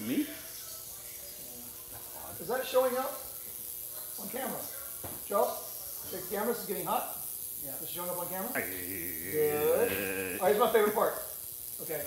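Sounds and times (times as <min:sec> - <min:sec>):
high-pitched electrical discharge hiss: 0:00.0 - 0:12.0.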